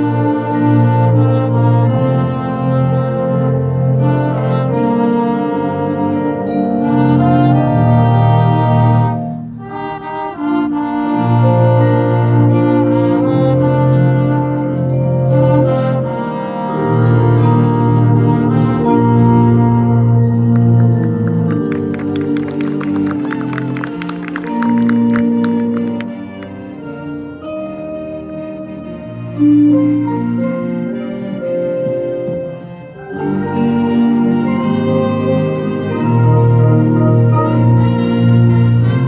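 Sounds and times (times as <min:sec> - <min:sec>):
brass band playing held chords: 0:00.0 - 0:39.0.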